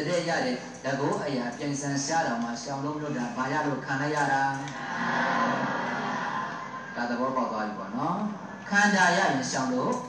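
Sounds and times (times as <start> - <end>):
voices held drawn-out: 4.6 - 9.8.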